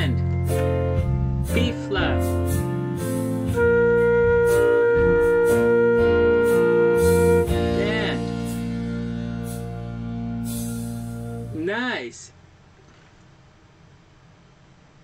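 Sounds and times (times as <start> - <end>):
synthesized band backing: 0.0 - 11.6
flute holding a long note: 3.5 - 7.6.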